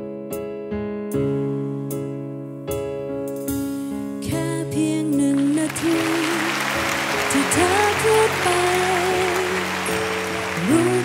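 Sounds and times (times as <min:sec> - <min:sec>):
live band with keyboard: 0:00.0 - 0:11.0
woman singing pop ballad: 0:04.2 - 0:11.0
audience applause: 0:05.4 - 0:11.0.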